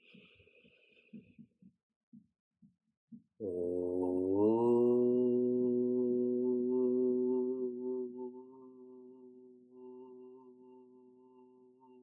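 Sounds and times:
man chanting a held note: 0:03.5 - 0:10.8.

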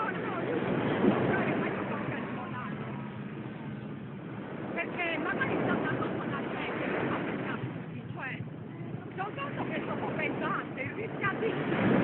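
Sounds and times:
surf: 0:00.0 - 0:12.0
wind: 0:00.0 - 0:12.0.

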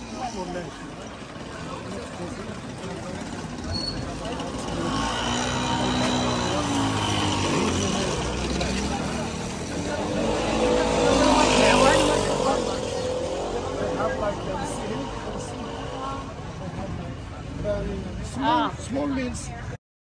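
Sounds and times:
small motorbike engines passing: 0:00.0 - 0:18.8
people talking: 0:00.0 - 0:19.8.

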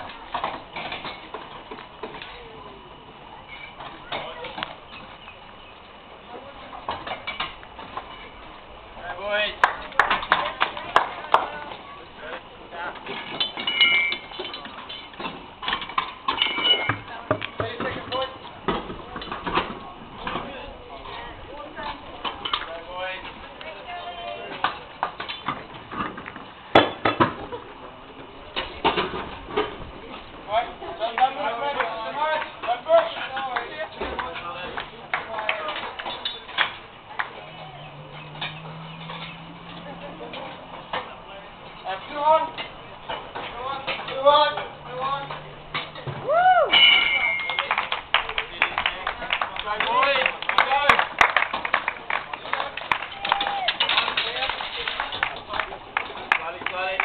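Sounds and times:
voices in background: 0:00.0 - 0:57.0
metallic clinks of wheel brace: 0:13.1 - 0:17.0, 0:46.7 - 0:48.0.

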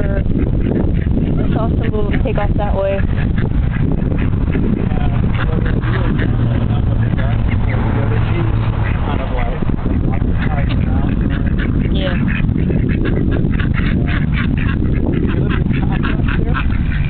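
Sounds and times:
ducks quacking: 0:00.0 - 0:17.0
steady low rumble: 0:00.0 - 0:17.0.

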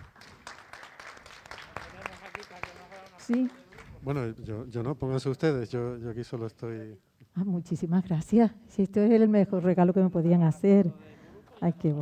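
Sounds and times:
scattered applause: 0:00.0 - 0:04.0.

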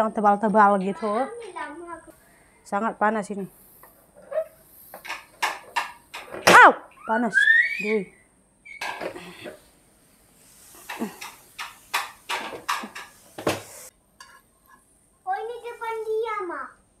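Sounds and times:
pan knocking on cutting board: 0:11.2 - 0:13.6.

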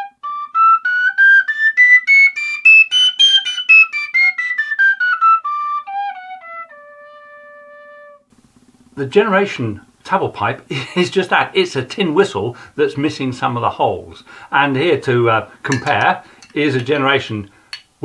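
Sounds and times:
metal whistle notes: 0:00.0 - 0:08.3.

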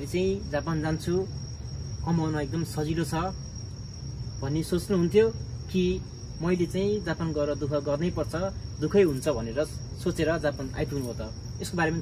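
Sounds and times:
man talking: 0:00.0 - 0:01.4, 0:02.0 - 0:03.4, 0:04.4 - 0:12.0
crickets trilling: 0:00.0 - 0:12.0.

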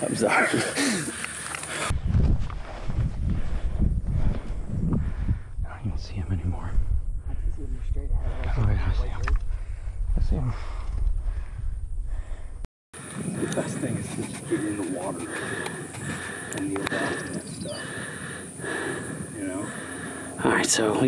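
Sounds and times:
open field ambience: 0:00.0 - 0:21.0
wind rumbling on microphone: 0:01.8 - 0:20.9.

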